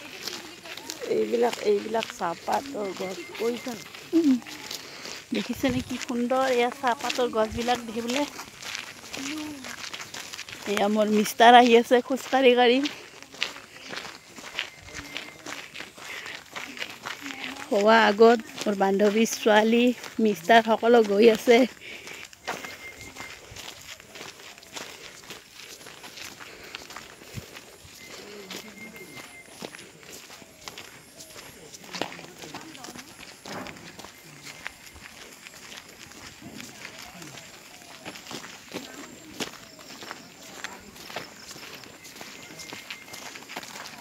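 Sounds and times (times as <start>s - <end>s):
faint voices talking: 0.0s - 44.0s
footsteps walking: 0.0s - 44.0s.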